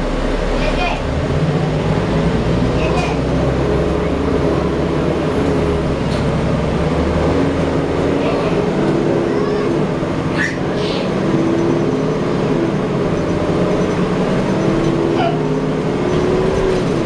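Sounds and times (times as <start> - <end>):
bus engine rumble: 0.0 - 17.0.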